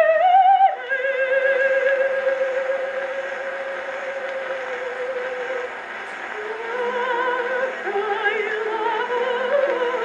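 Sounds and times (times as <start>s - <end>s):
operatic soprano singing: 0.0s - 10.0s
record surface hiss: 0.0s - 10.0s.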